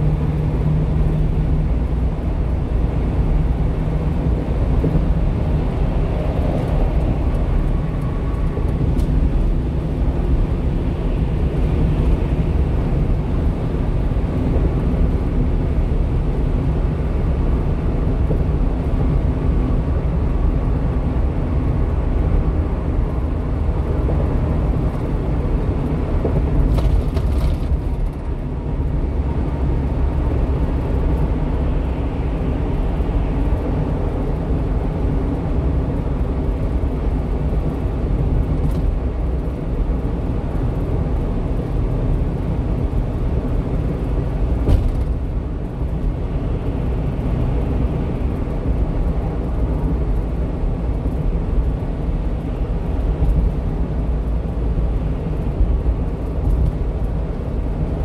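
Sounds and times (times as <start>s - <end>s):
truck engine and tyre rumble: 0.0s - 58.0s.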